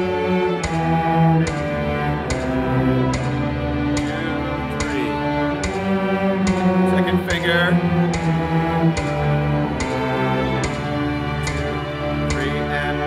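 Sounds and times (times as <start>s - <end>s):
cello playing slow bowed notes: 0.0s - 13.0s
steady ticking beat: 0.0s - 13.0s.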